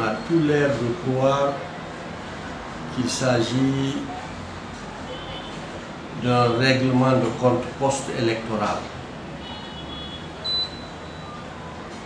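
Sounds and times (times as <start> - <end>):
faint high tones: 9.4 - 12.0
high electronic beep: 10.4 - 11.4.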